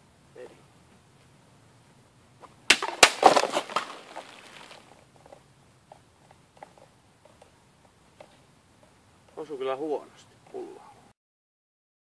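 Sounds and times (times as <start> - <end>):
sword striking plastic bottle: 2.7 - 4.3
water splashing: 2.7 - 4.8.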